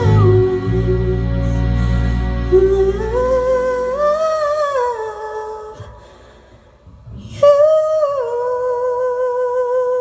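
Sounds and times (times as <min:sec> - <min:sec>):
woman singing through microphone: 0:00.0 - 0:01.2, 0:02.5 - 0:06.0, 0:07.1 - 0:10.0
band chord: 0:00.0 - 0:04.6.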